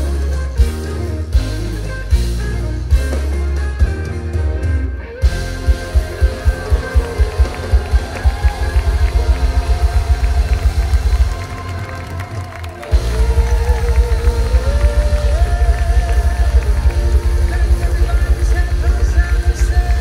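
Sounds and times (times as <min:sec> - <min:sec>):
live band playing: 0:00.0 - 0:20.0.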